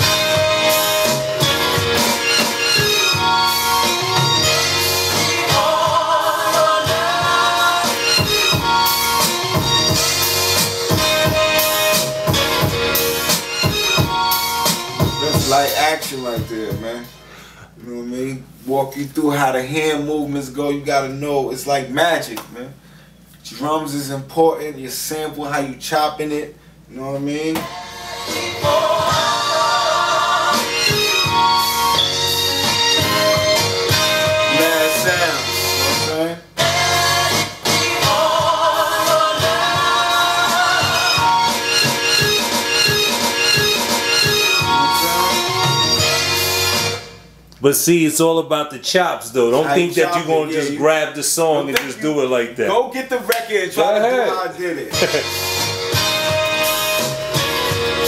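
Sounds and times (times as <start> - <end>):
chopped keyboard sample: 39.4 - 46.8.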